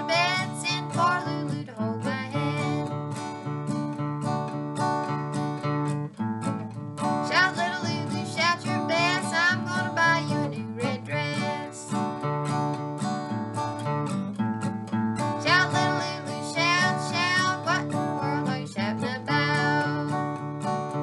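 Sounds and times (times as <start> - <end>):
woman singing: 0.0 - 3.0, 7.2 - 12.1, 15.3 - 20.5
acoustic guitar strumming: 0.0 - 21.0.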